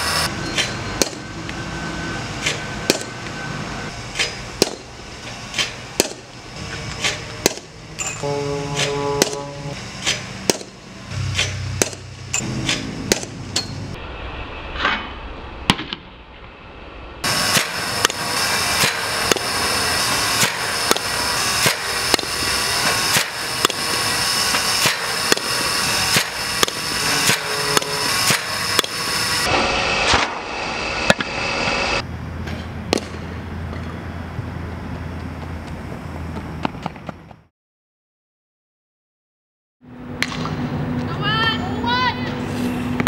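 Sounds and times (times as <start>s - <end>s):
bat hitting balls: 0.5s - 1.3s, 2.4s - 3.2s, 4.2s - 5.0s, 5.6s - 6.3s, 7.0s - 9.4s, 10.0s - 13.9s, 17.4s - 29.0s, 32.4s - 34.0s, 40.2s - 40.7s.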